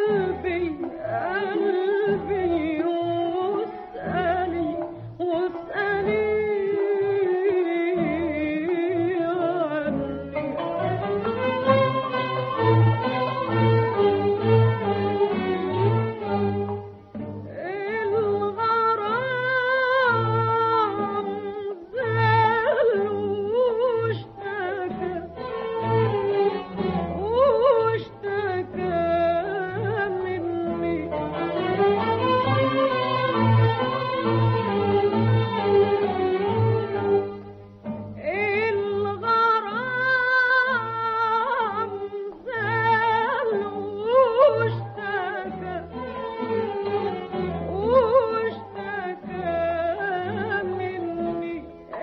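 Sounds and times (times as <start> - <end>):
woman singing ornamented melody: 0.0 - 16.7, 17.4 - 37.5, 38.2 - 52.0
small ensemble playing: 0.0 - 22.6, 23.7 - 40.7, 41.3 - 52.0
low musical accompaniment: 0.0 - 52.0.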